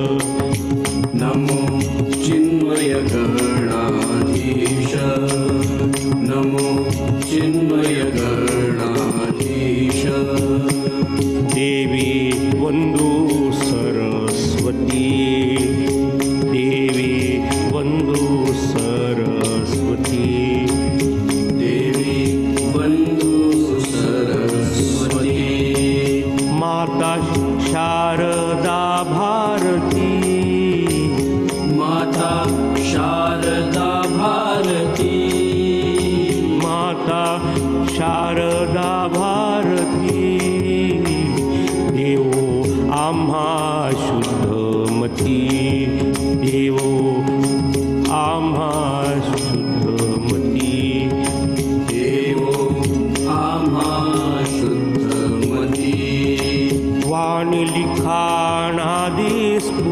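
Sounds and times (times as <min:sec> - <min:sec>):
light ticking percussion: 0:00.0 - 0:59.9
person singing devotional song: 0:00.0 - 0:59.9.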